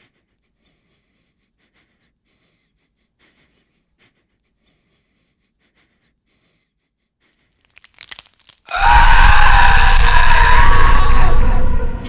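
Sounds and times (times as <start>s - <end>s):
faint crackles: 7.4s - 8.7s
deep rumble: 9.0s - 12.0s.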